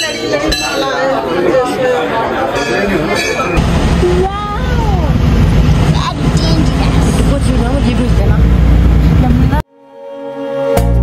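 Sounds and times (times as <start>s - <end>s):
voices: 0.0s - 9.6s
vehicle rumble from inside cabin: 3.6s - 9.6s.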